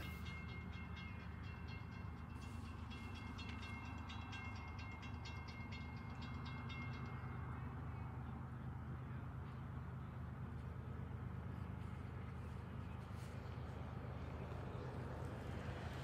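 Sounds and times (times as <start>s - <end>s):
rapid high ticking with ringing: 0.0s - 8.1s
distant train locomotive rumble: 0.0s - 16.0s.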